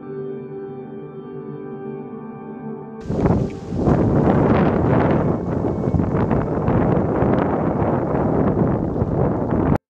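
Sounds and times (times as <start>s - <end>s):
deep crackling volcanic rumble: 3.0s - 9.8s
wind buffeting microphone: 3.0s - 9.8s.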